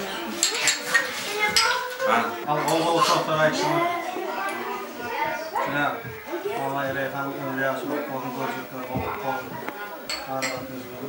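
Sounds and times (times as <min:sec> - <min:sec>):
voices: 0:00.0 - 0:11.0
ceramic bowls clinking: 0:00.3 - 0:01.9, 0:10.1 - 0:10.8.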